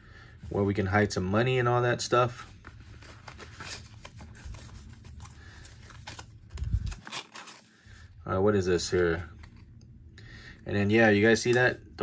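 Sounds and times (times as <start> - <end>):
rustling of wallet handling: 2.3 - 7.7.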